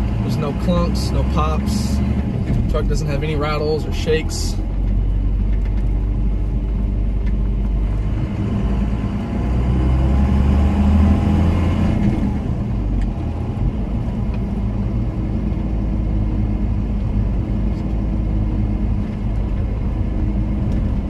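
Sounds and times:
diesel truck engine: 0:00.0 - 0:21.0
tyre and road noise: 0:00.0 - 0:21.0.

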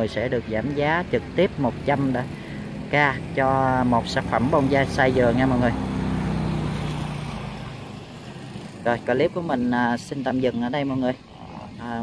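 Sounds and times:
motor vehicle engine hum: 0:00.0 - 0:12.0.

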